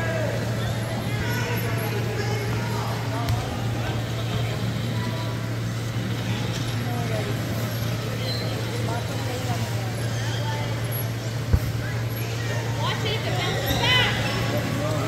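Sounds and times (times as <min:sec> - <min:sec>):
faint voices: 0:00.0 - 0:15.0.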